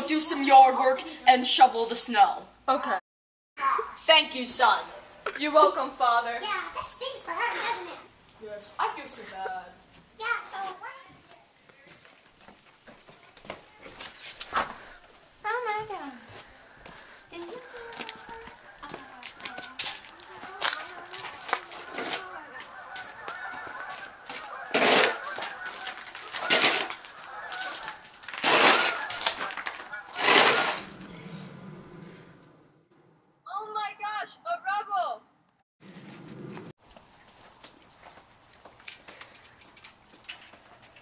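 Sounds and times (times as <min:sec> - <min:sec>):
shovel scraping snow on pavement: 0:14.0 - 0:14.9, 0:23.8 - 0:31.1.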